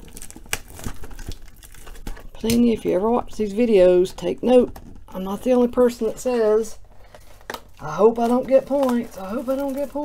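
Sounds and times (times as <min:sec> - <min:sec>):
shrink wrap crinkling and crackling: 0:00.0 - 0:10.0.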